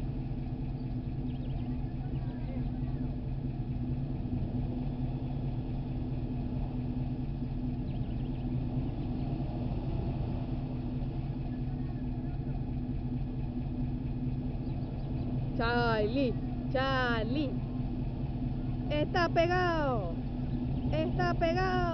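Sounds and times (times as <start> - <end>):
vehicle engine running: 0.0 - 21.9.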